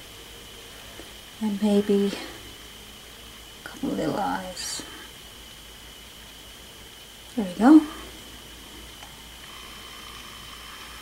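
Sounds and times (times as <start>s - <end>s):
background hiss: 0.0s - 11.0s
faint high-pitched whine: 0.0s - 11.0s.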